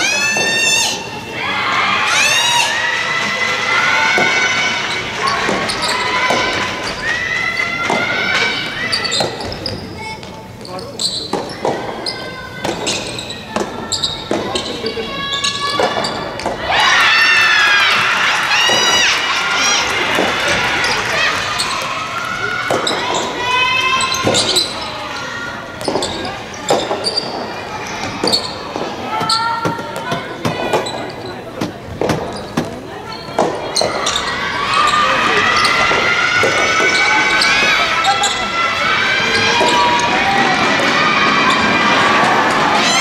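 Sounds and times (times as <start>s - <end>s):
shouting and cheering: 0.0s - 9.4s, 13.8s - 26.7s, 33.2s - 43.0s
players shouting: 0.0s - 9.9s, 11.3s - 31.5s, 32.1s - 43.0s.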